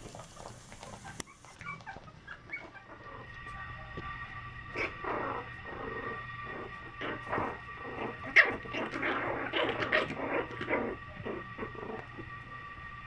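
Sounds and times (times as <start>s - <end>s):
puppies yelping while playing: 0.3s - 4.0s, 4.7s - 12.3s.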